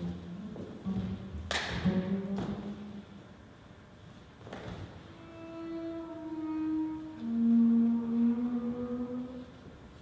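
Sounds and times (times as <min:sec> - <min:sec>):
bowed double bass notes: 0:00.0 - 0:03.4, 0:04.9 - 0:10.0.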